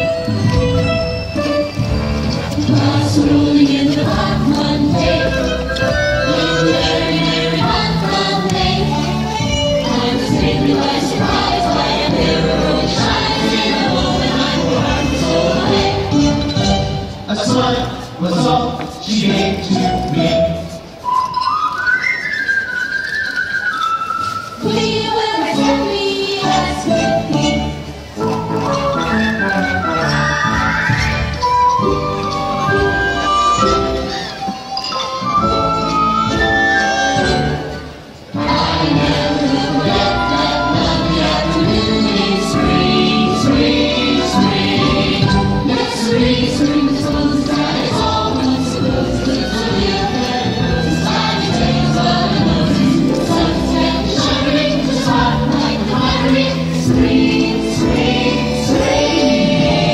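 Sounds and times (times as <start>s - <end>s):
music with singing: 0.0s - 59.9s
person whistling a tune: 21.0s - 24.6s.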